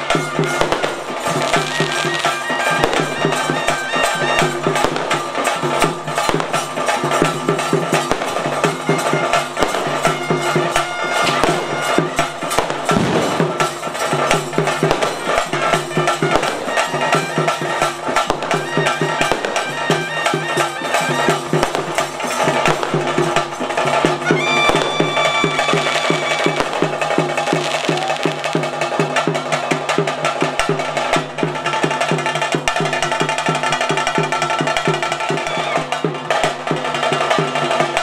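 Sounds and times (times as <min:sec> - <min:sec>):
drums beaten in fast rhythm: 0:00.0 - 0:38.0.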